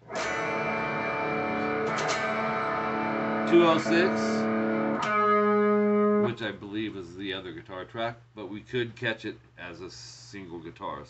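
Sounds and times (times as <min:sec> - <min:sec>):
electric guitar strumming chord: 0:00.0 - 0:06.4.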